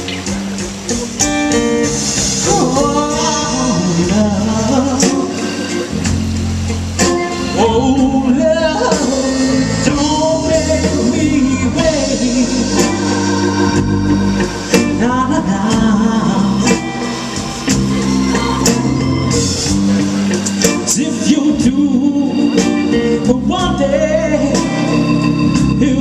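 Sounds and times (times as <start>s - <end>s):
soul band playing: 0.0s - 26.0s
person singing: 2.4s - 6.0s, 7.3s - 13.8s, 14.7s - 26.0s.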